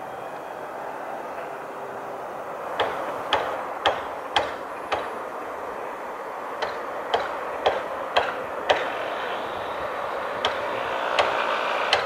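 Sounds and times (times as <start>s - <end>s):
steady background noise: 0.0s - 12.0s
distant hammer blows: 1.3s - 12.0s.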